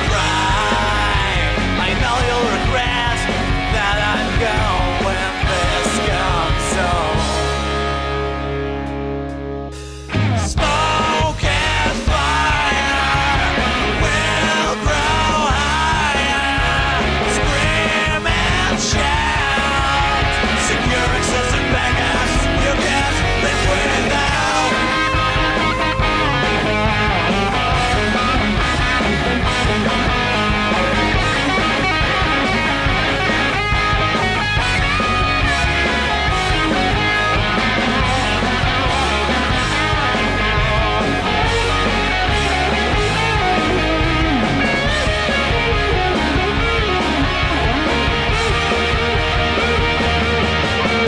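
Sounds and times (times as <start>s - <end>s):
electric guitars playing: 0.0s - 51.0s.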